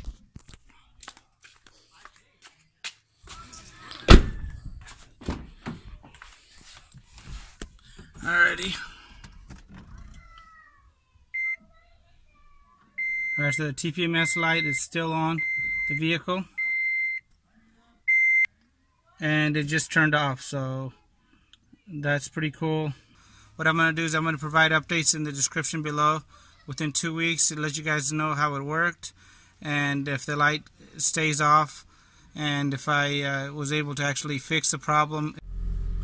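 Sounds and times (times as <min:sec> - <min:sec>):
car door thunk: 0:04.1 - 0:04.6
car dashboard chime beeping: 0:15.4 - 0:16.0.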